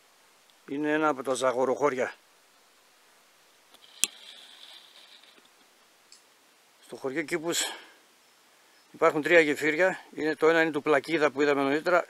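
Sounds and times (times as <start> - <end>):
faint high hiss: 0.0 - 12.0.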